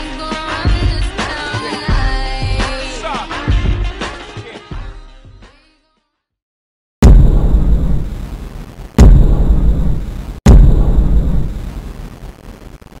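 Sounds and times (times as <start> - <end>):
deep cinematic boom hits: 7.0 - 11.8.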